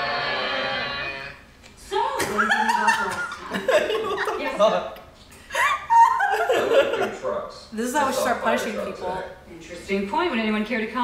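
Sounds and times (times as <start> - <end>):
people laughing: 2.2 - 4.7, 5.5 - 7.4.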